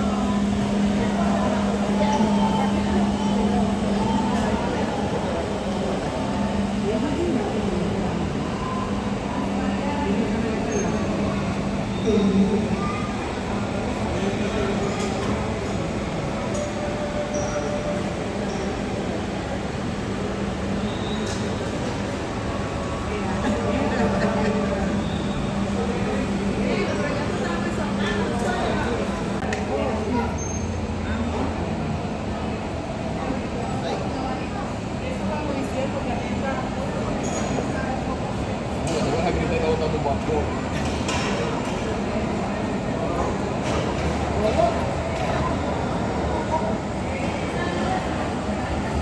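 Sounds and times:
jet engines idling roar: 0.0 - 47.4.

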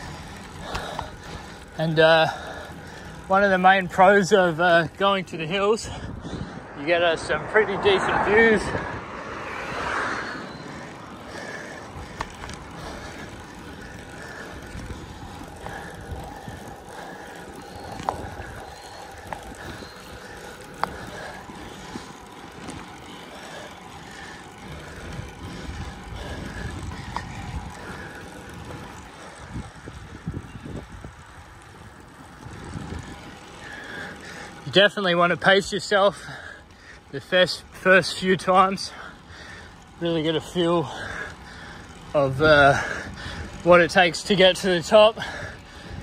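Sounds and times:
bike tyres rolling on rough asphalt: 0.0 - 46.0.

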